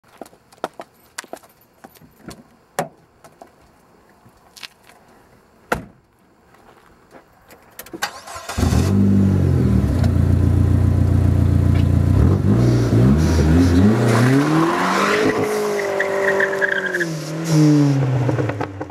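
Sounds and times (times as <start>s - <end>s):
car engine starting and revving: 8.0s - 18.9s
tire squeal: 12.6s - 17.9s.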